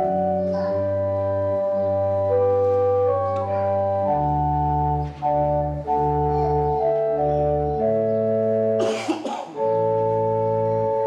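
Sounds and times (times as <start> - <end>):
organ sustained chords: 0.0 - 11.0
person coughing: 8.8 - 9.6.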